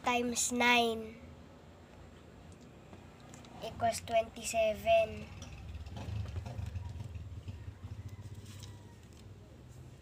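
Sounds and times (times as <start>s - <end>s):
low engine rumble: 3.4s - 10.0s.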